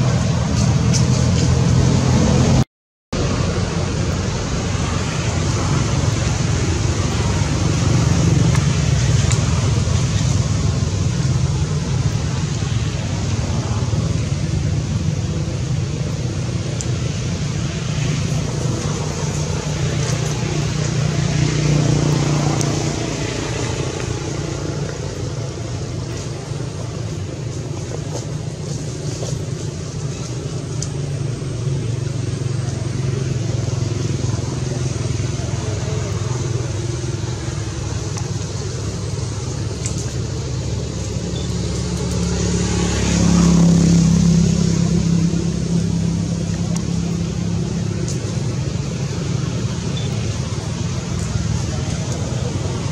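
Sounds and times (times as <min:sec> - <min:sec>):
motor vehicle engine noise: 0:00.0 - 0:52.9.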